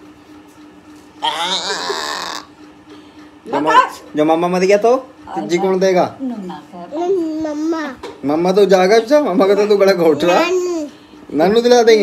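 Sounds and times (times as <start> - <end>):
person's wavering vocal sound: 1.2 - 2.5.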